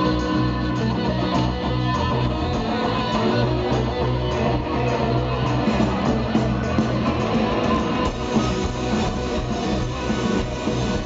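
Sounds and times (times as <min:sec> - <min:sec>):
guitars: 0:00.0 - 0:11.0
live band playing: 0:00.0 - 0:11.0.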